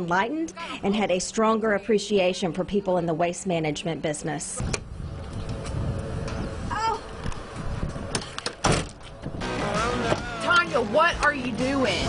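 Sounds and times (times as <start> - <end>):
low rumble: 4.6 - 8.2
truck door slamming: 8.1 - 9.0.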